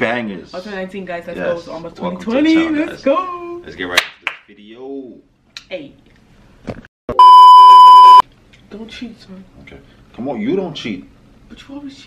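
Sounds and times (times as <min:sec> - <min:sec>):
high-pitched bleep tone: 0:07.1 - 0:08.2.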